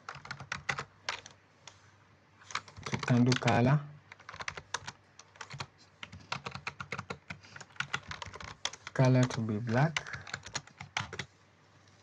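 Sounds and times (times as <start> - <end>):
computer keyboard typing: 0.0 - 1.4, 2.5 - 11.3.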